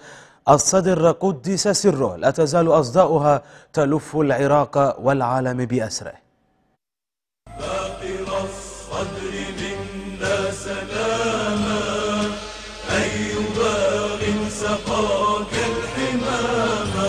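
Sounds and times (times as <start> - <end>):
steady low drone: 7.5 - 17.0.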